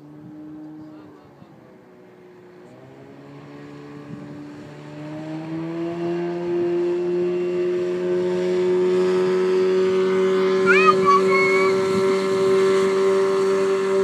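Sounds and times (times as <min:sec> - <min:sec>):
speedboat engine passing: 0:00.0 - 0:14.0
high-pitched rising cries: 0:10.6 - 0:12.3.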